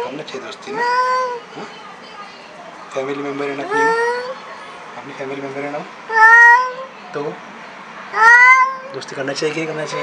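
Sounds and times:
cat meowing: 6.1s - 6.9s, 8.1s - 9.0s.

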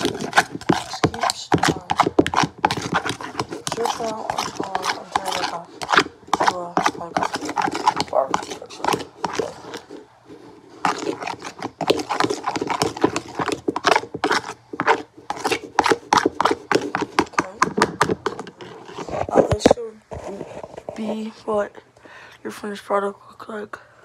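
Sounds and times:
plastic spoon stirring in bowl: 0.0s - 21.6s.

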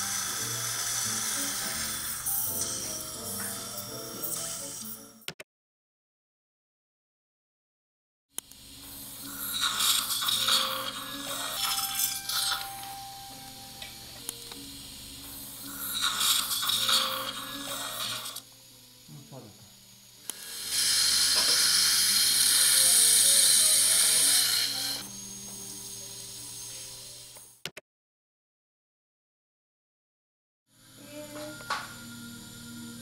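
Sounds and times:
suction aspirator hissing: 0.0s - 5.1s, 8.4s - 27.6s.

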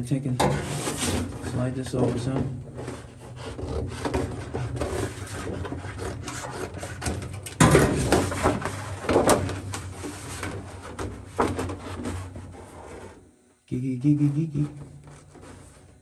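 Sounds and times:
cardboard scraping on sheet metal: 0.4s - 13.3s, 14.5s - 16.0s.

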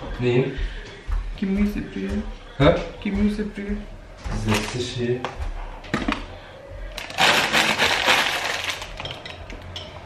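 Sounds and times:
plastic packet crinkling: 7.0s - 9.1s.

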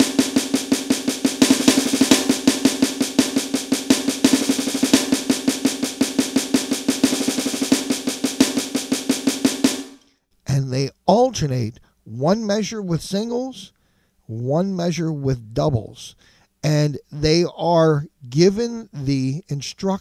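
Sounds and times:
electronic drum pad snare strokes: 0.0s - 10.1s.

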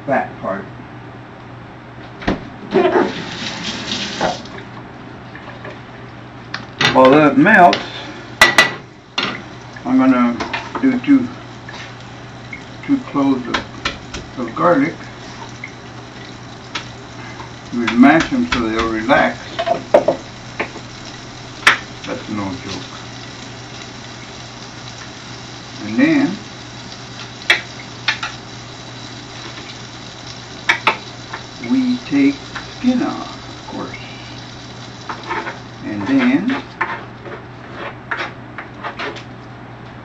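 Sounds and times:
steady low hum: 0.0s - 38.5s.

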